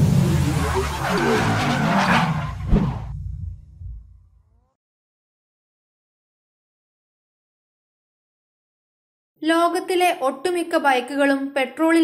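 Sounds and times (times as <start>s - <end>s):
tyre screech skid: 0.1s - 3.1s
low rumble: 2.6s - 4.5s.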